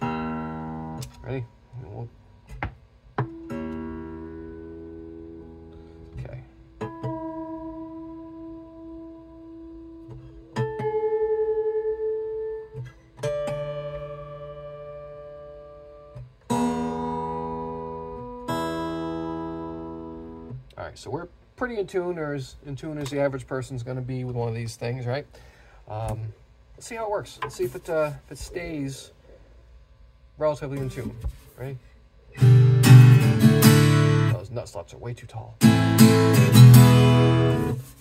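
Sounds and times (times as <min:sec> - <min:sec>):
acoustic guitar notes plucked: 0:00.0 - 0:20.7, 0:32.4 - 0:34.4, 0:35.6 - 0:38.0
guitar chords strummed: 0:00.0 - 0:20.7, 0:32.3 - 0:34.5, 0:35.6 - 0:38.0.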